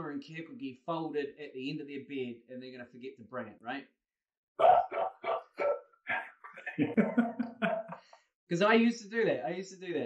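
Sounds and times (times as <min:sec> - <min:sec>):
men laughing: 0:06.5 - 0:08.1.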